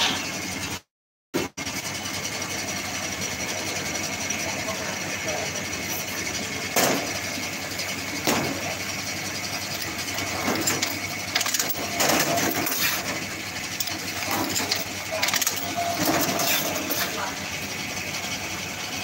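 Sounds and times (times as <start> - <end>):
strapping machine humming: 1.4 - 19.0
machine clacks and knocks: 6.7 - 7.3, 8.2 - 8.9, 9.5 - 17.3.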